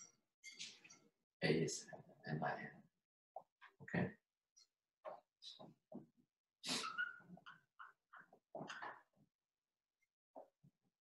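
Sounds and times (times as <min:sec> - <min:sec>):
marker squeaking on whiteboard: 0:06.6 - 0:09.1.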